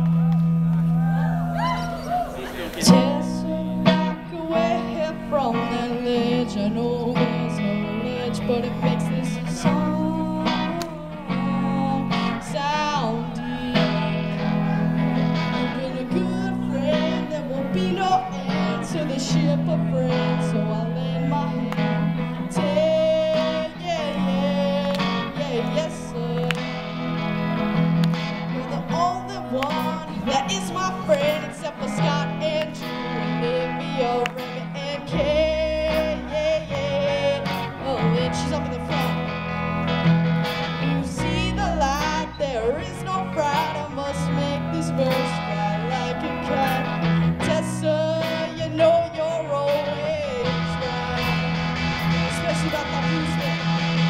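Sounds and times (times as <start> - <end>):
bass guitar: 0.0 - 54.0
electric guitars: 0.0 - 54.0
lead vocal singing: 1.0 - 54.0.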